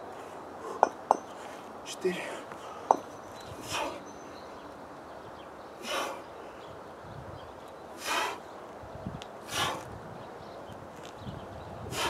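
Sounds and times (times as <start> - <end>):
man breathing out sharply: 9.4 - 9.9.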